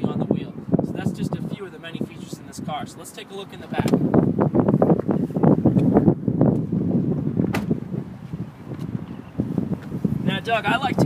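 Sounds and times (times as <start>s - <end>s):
wind on microphone: 0.0s - 11.0s
rustling and knocking in car seat: 7.4s - 7.8s.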